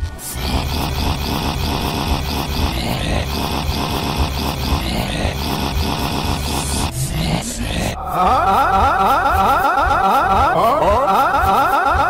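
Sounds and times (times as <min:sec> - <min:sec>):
cartoon soundtrack played backwards: 0:00.0 - 0:12.0.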